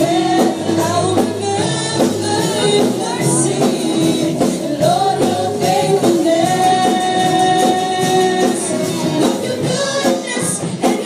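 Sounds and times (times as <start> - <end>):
drum kit: 0.0 - 11.0
electric bass: 0.0 - 11.0
guitars: 0.0 - 11.0
keyboard: 0.0 - 11.0
women singing together: 0.0 - 11.0.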